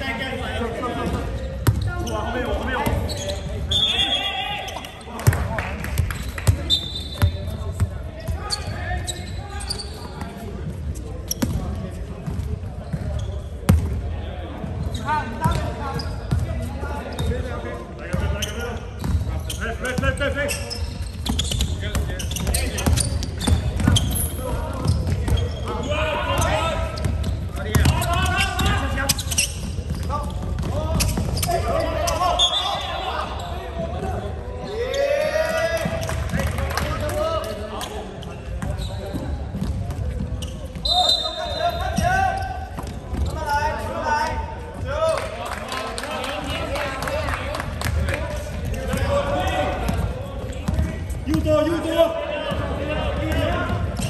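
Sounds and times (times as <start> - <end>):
shoes squeaking: 0.8 - 5.2, 6.0 - 13.8, 14.7 - 36.4, 37.5 - 45.3, 48.3 - 54.0.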